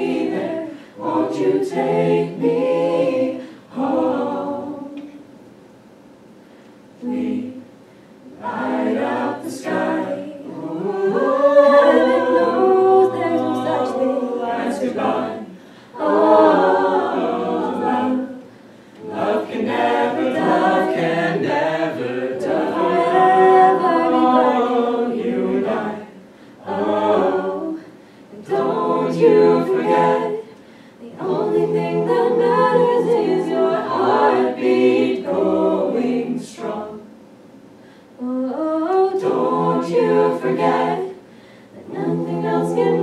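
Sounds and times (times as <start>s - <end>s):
a cappella group singing in harmony: 0.0s - 5.4s, 6.6s - 43.0s.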